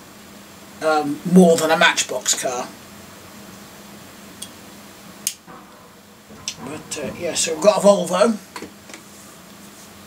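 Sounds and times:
low room hum: 5.2 - 8.8.

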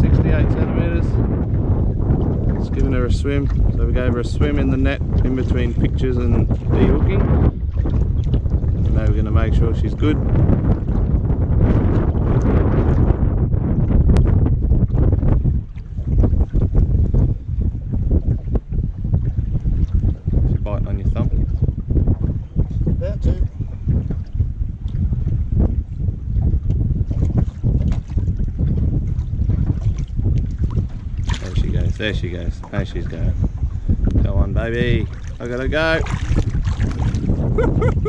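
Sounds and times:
wind buffeting microphone: 0.0 - 38.0.

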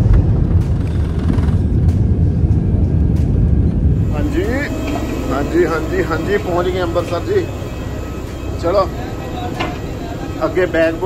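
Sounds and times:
jet engines and wheels rumbling: 0.0 - 11.0
man's voice: 4.0 - 7.6.

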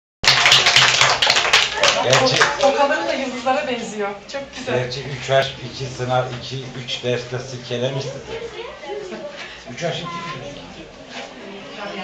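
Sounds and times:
children clapping: 0.2 - 2.9
children's voices: 8.1 - 9.6.

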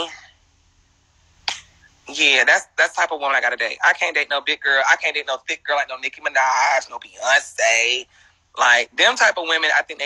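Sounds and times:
person speaking: 0.0 - 0.3, 1.5 - 10.0
sharp click: 1.5 - 1.7.

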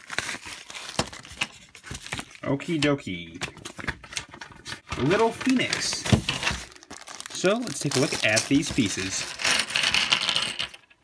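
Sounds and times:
paper rustling: 0.0 - 9.8
plastic mailer crinkling: 0.0 - 10.8.

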